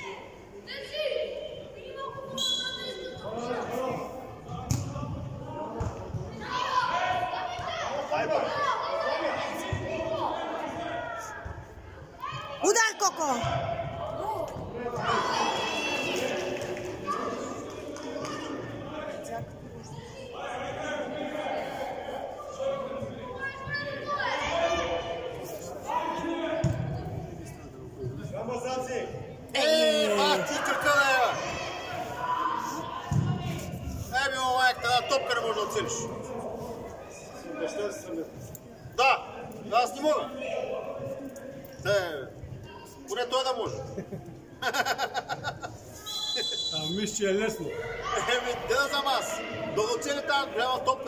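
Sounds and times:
voices calling out echoing: 0:00.0 - 0:51.0
loud shout: 0:06.3 - 0:11.4, 0:15.0 - 0:18.7.

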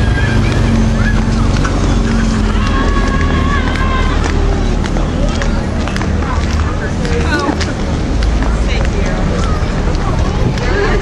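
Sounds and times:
footsteps on asphalt: 0:00.0 - 0:11.0
wind rumble: 0:00.0 - 0:11.0.

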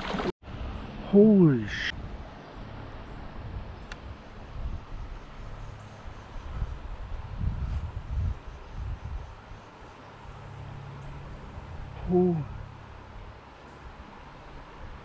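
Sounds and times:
wind buffeting microphone: 0:03.1 - 0:13.4.

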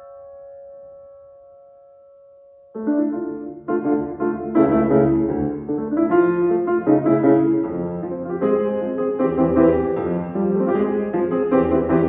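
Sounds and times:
piano notes ringing: 0:00.0 - 0:12.0.

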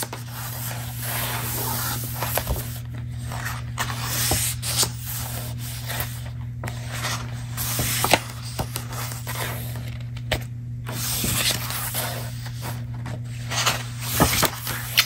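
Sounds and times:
book pages rustling: 0:00.0 - 0:15.0.

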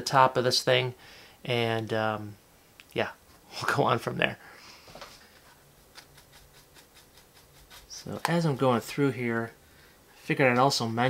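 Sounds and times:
stiff brush scratching plastic: 0:05.8 - 0:08.6.

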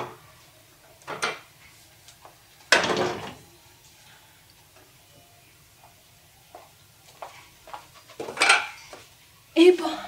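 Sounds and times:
metal stool clattering on tiles: 0:01.0 - 0:01.5, 0:02.7 - 0:03.4, 0:08.0 - 0:08.9.

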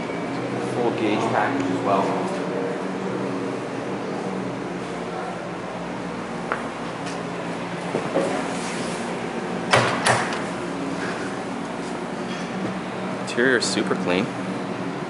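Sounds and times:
steady low hum: 0:00.0 - 0:15.0
car door latch clacks: 0:09.7 - 0:10.4.

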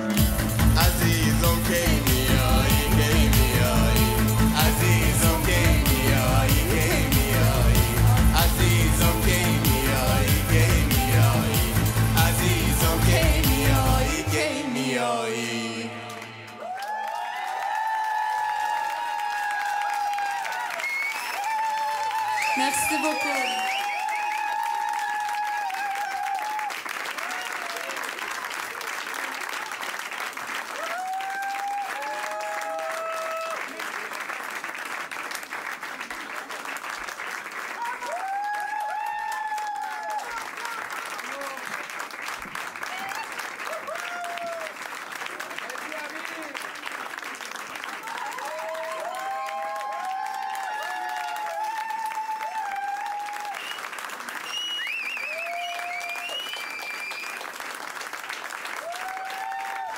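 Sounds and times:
people cheering and calling out: 0:00.0 - 0:28.9, 0:30.7 - 0:33.8, 0:37.8 - 0:41.8, 0:42.8 - 0:44.8, 0:48.0 - 0:53.7, 0:58.8 - 0:59.9
audience applauding: 0:00.0 - 0:59.9.

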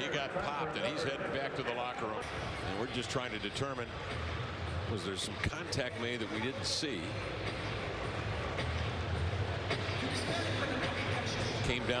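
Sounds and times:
crowd voices din: 0:00.0 - 0:12.0.

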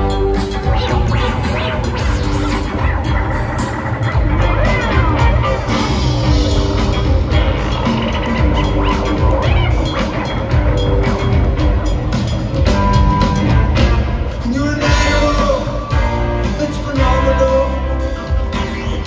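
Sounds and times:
live rock band playing: 0:00.0 - 0:19.0.

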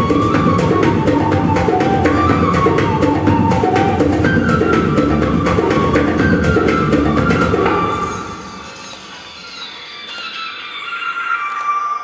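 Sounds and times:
belly dance music with high held notes: 0:00.0 - 0:12.0.

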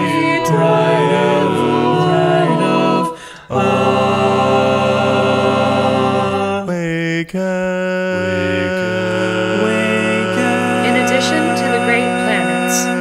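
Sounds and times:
vocal ensemble singing chords: 0:00.0 - 0:13.0.

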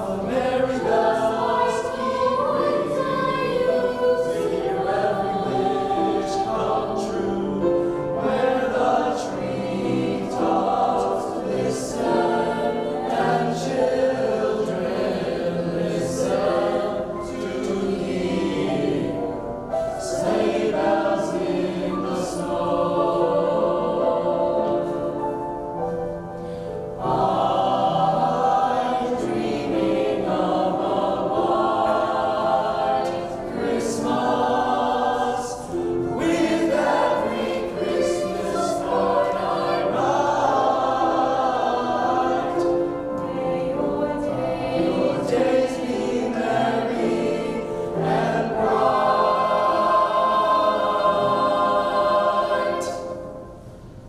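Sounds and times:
mixed choir singing: 0:00.0 - 0:53.8.

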